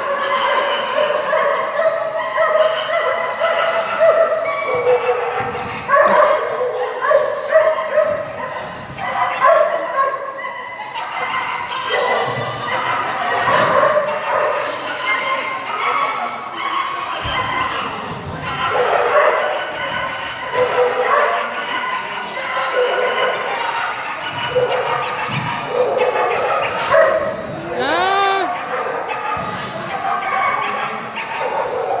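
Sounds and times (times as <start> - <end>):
dog barking: 0.5 - 8.4, 9.2 - 12.3, 18.6 - 19.6, 20.5 - 21.6, 24.5 - 27.3, 30.2 - 32.0.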